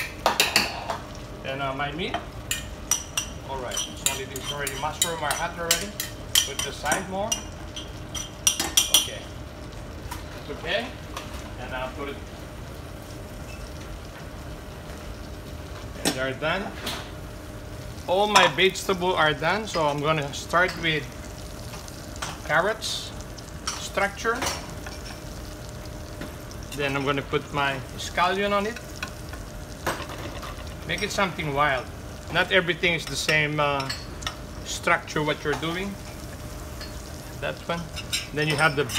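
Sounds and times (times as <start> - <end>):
food sizzling in pans: 0.0 - 38.9.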